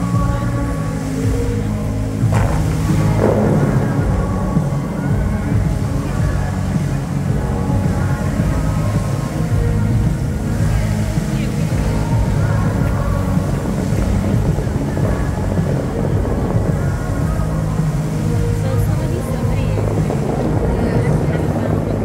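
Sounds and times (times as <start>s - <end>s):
fountain water jets hissing: 0.0s - 22.0s
music over outdoor loudspeakers: 0.0s - 22.0s.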